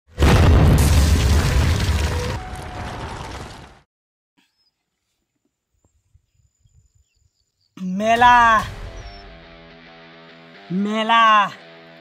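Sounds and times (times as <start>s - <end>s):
explosion with crumbling rubble: 0.1s - 3.9s.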